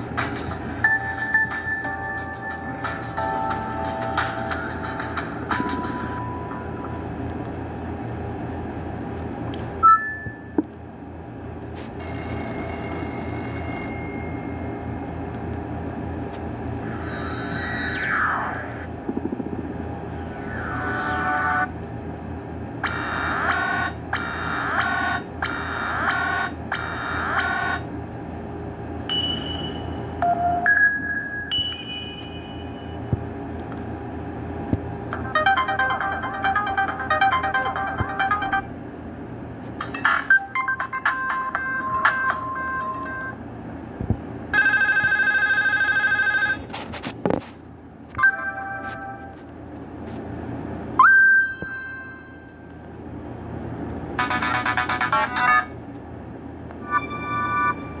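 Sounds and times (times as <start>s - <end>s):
ringtone melody: 0.8s - 7.0s, 35.2s - 38.8s, 39.8s - 43.4s, 54.2s - 55.7s, 56.8s - 58.0s
phone ringtone beeping: 12.0s - 14.7s, 35.2s - 38.7s, 39.8s - 43.4s, 44.5s - 46.6s, 51.0s - 52.6s, 56.8s - 58.0s
fast-pulsing electronic tone: 16.8s - 19.0s
rising electronic tone: 16.8s - 19.0s.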